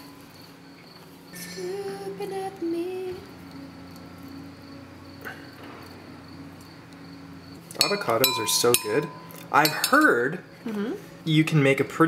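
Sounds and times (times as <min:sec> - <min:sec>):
thin high whine: 0:00.0 - 0:10.9.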